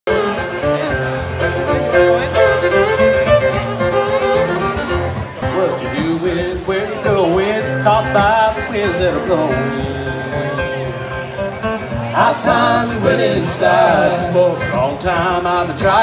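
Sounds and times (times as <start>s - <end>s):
banjo: 0.1s - 16.0s
bass: 0.1s - 16.0s
fiddle: 0.1s - 16.0s
person singing: 12.2s - 16.0s.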